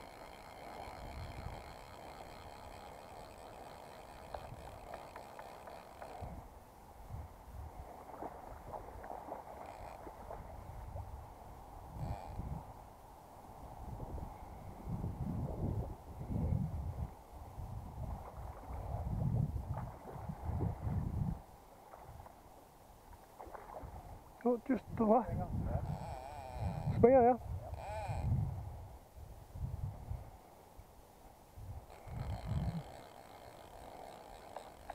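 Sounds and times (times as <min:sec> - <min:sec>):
wind buffeting microphone: 0:00.0 - 0:13.0, 0:13.6 - 0:22.3, 0:23.5 - 0:30.4, 0:31.6 - 0:34.9.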